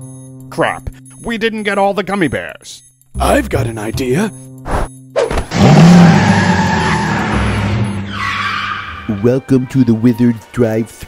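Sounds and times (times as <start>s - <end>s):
car engine revving: 5.5s - 9.2s
car speeding off: 5.5s - 9.2s
tyres skidding: 5.5s - 9.4s.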